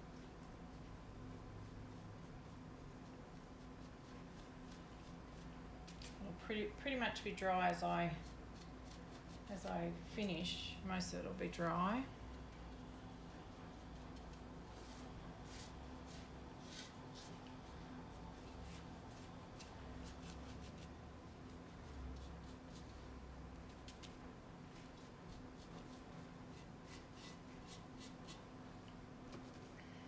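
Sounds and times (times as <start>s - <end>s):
steady low hum: 0.0s - 30.0s
paintbrush scratching: 0.1s - 6.3s, 7.6s - 10.6s, 12.3s - 28.6s.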